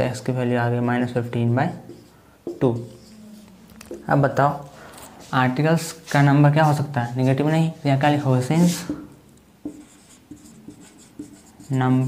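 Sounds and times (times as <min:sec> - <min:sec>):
marker scratching on whiteboard: 0:01.7 - 0:12.0
light marker taps: 0:01.8 - 0:03.0, 0:08.9 - 0:11.4.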